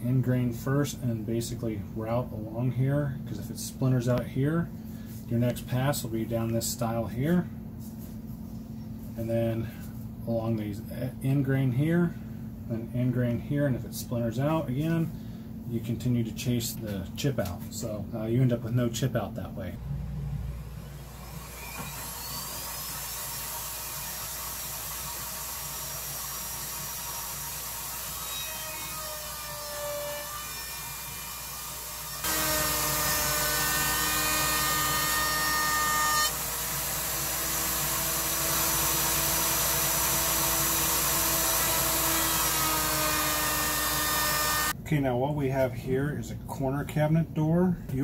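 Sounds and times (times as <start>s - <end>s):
router whining: 19.8s - 44.7s
router cutting wood edge: 21.0s - 44.7s.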